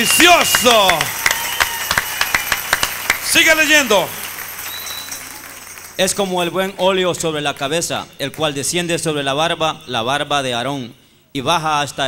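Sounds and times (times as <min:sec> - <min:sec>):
congregation applauding: 0:00.0 - 0:06.8.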